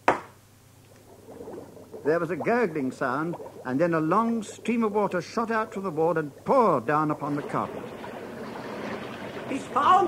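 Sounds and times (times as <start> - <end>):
water gurgling in a pipe: 0.9 - 10.0.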